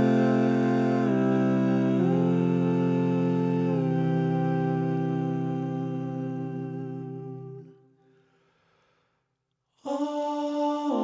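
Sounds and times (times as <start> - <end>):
a cappella voices in harmony: 0.0 - 8.1, 9.8 - 11.0.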